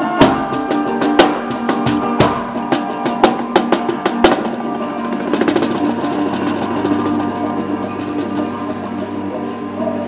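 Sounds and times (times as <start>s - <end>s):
drum strikes: 0.0s - 9.2s
folk ensemble music: 0.0s - 10.0s.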